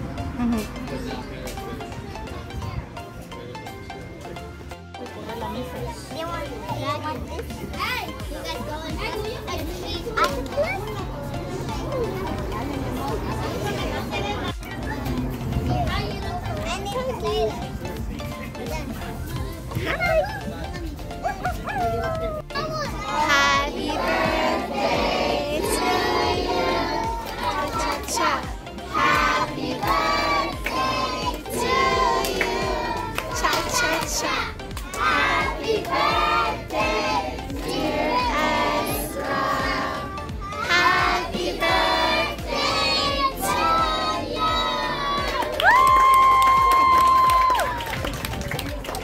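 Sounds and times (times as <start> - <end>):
background music: 0.0 - 49.0
children's voices: 5.6 - 24.7
crowd singing: 8.3 - 16.6, 23.0 - 45.6.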